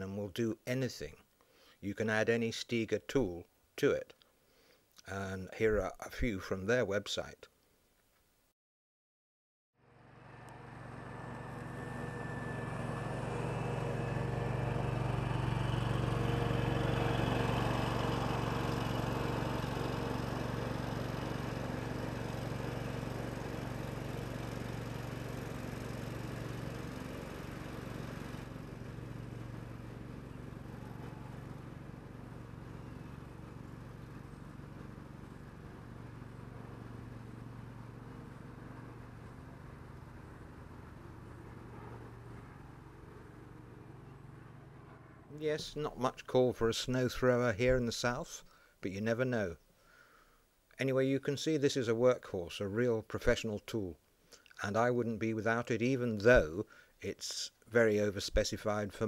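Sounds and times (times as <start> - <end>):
ride-on mower engine running: 9.8 - 45.8.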